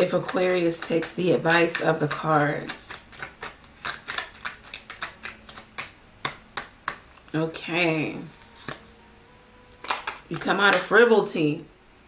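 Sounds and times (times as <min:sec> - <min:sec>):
cards being shuffled: 0:00.0 - 0:07.4, 0:08.2 - 0:09.0, 0:09.8 - 0:10.8.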